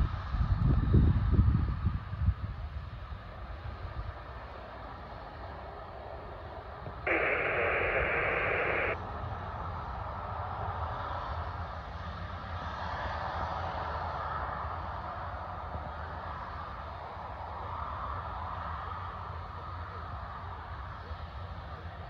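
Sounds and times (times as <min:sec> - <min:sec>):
low wind rumble: 0:00.0 - 0:09.0
distant airport noise: 0:02.5 - 0:22.0
radio static hiss: 0:07.1 - 0:09.0.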